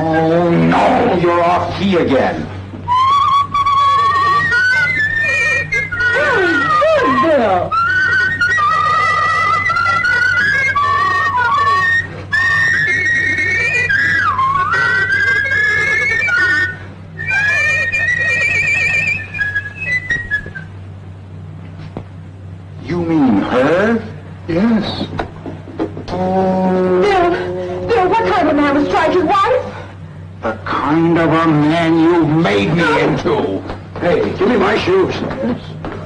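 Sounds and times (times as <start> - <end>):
people whistling a tune: 2.9 - 20.8.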